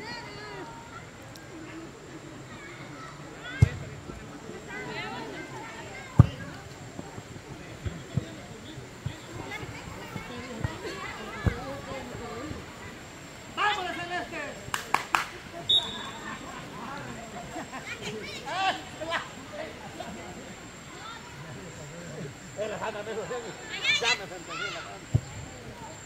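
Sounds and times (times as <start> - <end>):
voices calling out: 0.0 - 26.0
football being kicked: 3.6 - 4.0, 6.2 - 6.5, 25.1 - 25.5.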